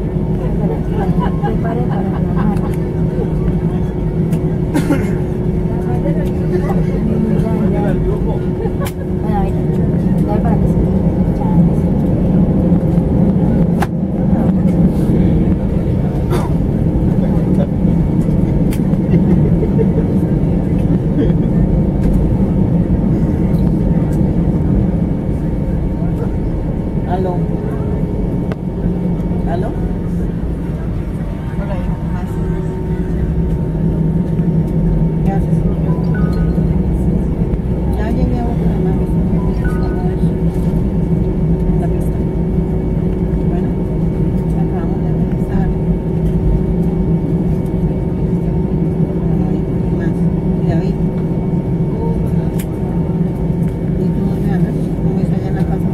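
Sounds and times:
aircraft cabin low drone: 0.0 - 55.9
passengers murmuring: 0.0 - 55.9.

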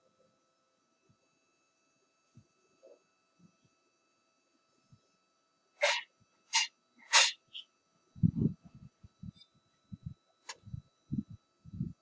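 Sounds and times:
stifled sneezes: 5.8 - 7.5.

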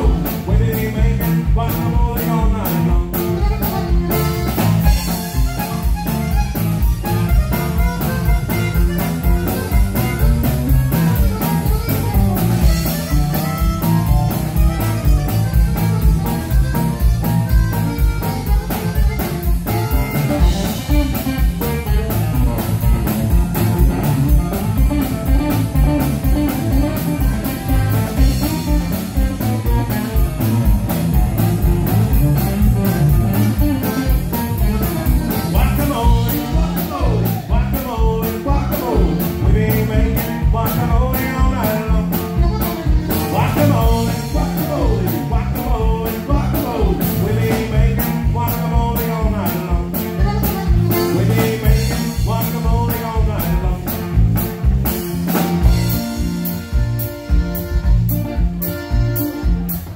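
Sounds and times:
button accordion: 0.0 - 59.9
drum kit beat: 0.0 - 59.9
honky-tonk band playing: 0.0 - 59.9.

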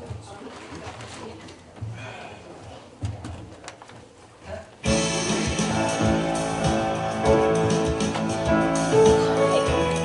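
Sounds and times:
congregation shuffling and rustling: 0.0 - 4.9.

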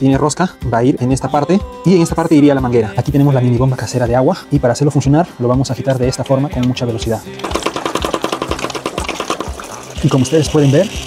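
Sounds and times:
marble clattering inside tube: 7.3 - 11.0
water sloshing: 7.4 - 11.0.

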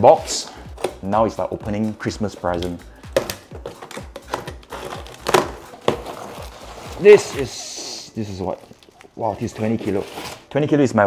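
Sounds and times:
background music: 0.0 - 11.0
cardboard and plastic crinkling: 2.6 - 10.8
plastic strapping cut: 3.2 - 10.5.

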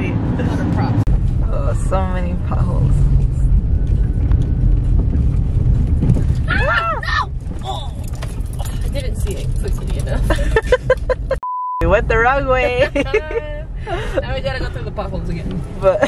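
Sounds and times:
car road rumble: 0.0 - 16.0
car knocks and rattles: 3.0 - 11.4.

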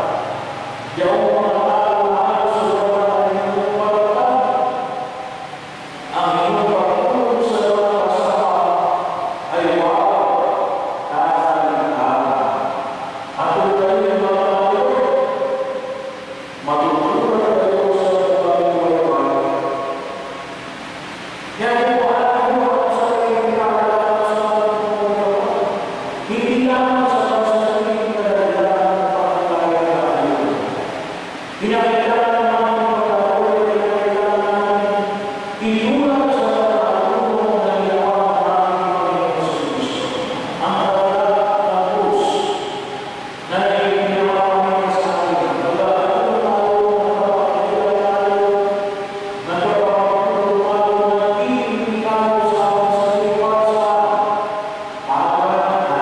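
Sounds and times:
man chanting into microphone: 0.0 - 5.5, 6.1 - 16.0, 16.6 - 20.2, 21.5 - 30.9, 31.6 - 56.0.

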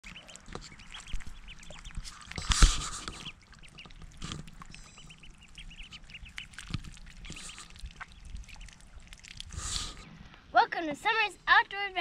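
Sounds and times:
ducklings peeping: 0.0 - 10.3.

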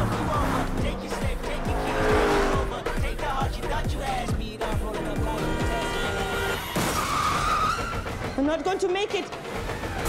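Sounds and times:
cars speeding: 0.0 - 3.4
tyre squeal: 6.9 - 8.2.

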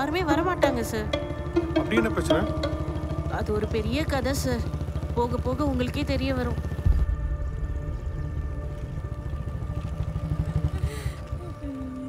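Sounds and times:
motorcycle engine running: 0.0 - 12.0.

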